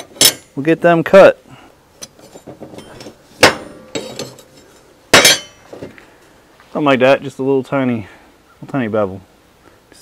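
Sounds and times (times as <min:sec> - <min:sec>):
steel clanking on steel table: 0:00.0 - 0:00.5, 0:02.0 - 0:05.6.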